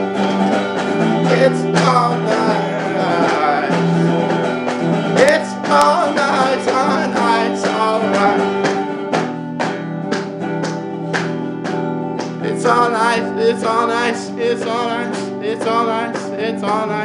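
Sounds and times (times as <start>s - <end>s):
country folk band instrumental: 0.0s - 17.0s.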